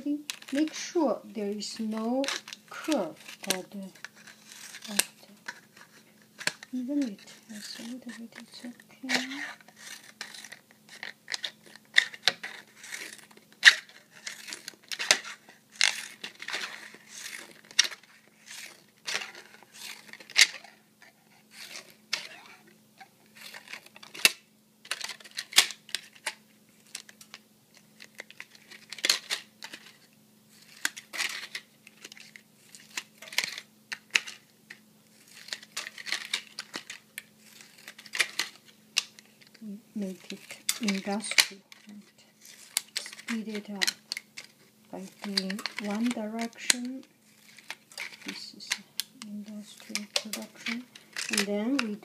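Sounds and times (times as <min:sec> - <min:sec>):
faint low hum: 0:00.0 - 0:52.0
plastic crinkling: 0:00.0 - 0:52.0.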